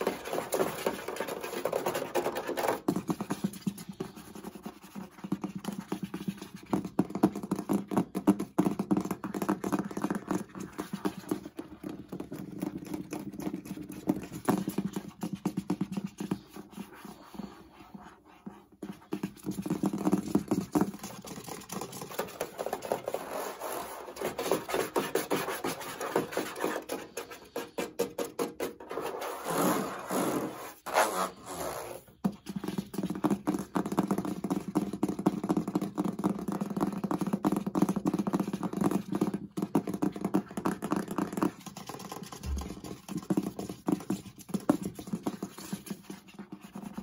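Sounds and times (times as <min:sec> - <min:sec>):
fingers tapping and scratching plastic: 0:00.0 - 0:47.0.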